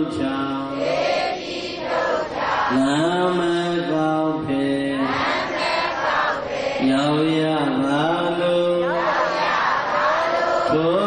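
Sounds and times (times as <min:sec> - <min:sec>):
man chanting melodically: 0:00.0 - 0:00.9, 0:02.7 - 0:05.5, 0:06.8 - 0:09.4, 0:10.6 - 0:11.0.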